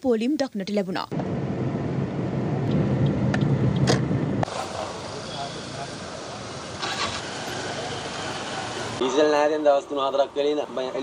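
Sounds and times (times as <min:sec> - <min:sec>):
street background: 0:00.0 - 0:11.0
diesel bus engine rumbling: 0:01.1 - 0:09.1.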